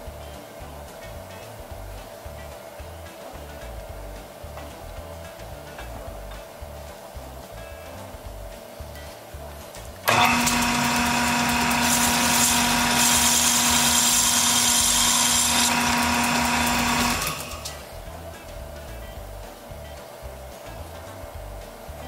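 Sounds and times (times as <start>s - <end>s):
soft background music: 0.0s - 22.0s
lathe motor hum and whine: 10.1s - 17.7s.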